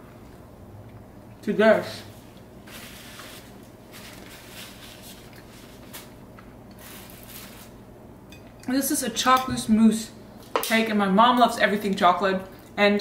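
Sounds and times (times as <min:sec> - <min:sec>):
paper napkin rustling: 0:02.1 - 0:07.8.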